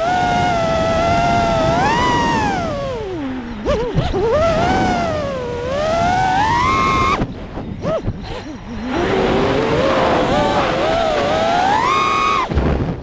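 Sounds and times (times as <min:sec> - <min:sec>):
quadcopter motors whining: 0:00.0 - 0:12.5.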